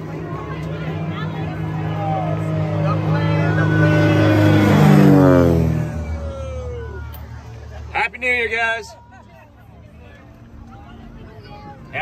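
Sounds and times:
motor vehicle passing: 0:00.0 - 0:12.0
voices: 0:00.0 - 0:12.0.

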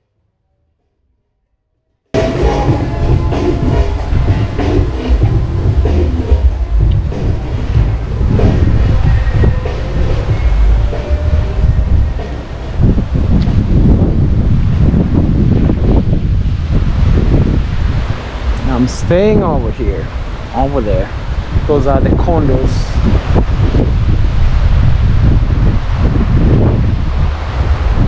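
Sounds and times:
background music: 0:02.2 - 0:13.6
wind buffeting microphone: 0:02.2 - 0:28.0.

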